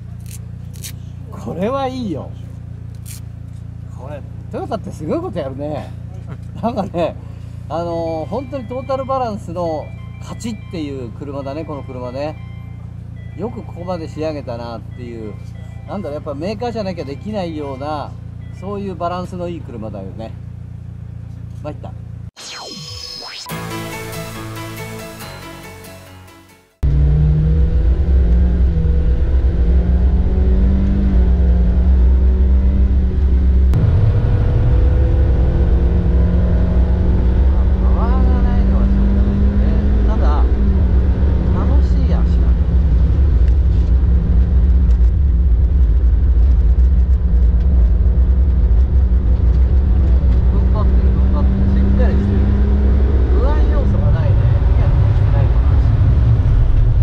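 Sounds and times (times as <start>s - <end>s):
car engine running hard: 0.0s - 9.8s, 26.8s - 57.0s.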